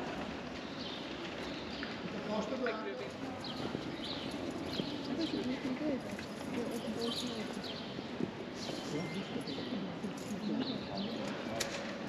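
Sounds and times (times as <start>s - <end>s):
footsteps on cobblestones: 0.0s - 12.0s
people talking indistinctly: 2.1s - 11.9s.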